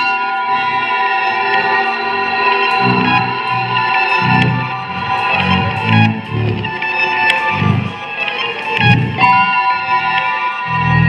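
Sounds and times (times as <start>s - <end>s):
electric guitars ringing chord: 0.1s - 11.0s.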